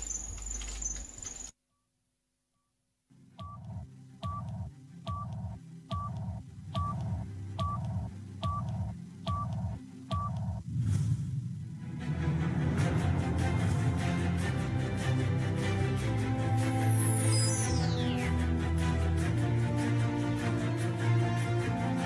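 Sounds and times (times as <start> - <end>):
low pulsing beat: 3.4 - 14.8.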